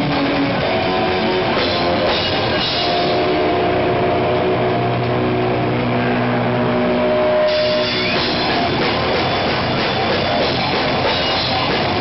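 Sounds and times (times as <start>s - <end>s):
distorted electric guitars chord: 0.0s - 12.0s.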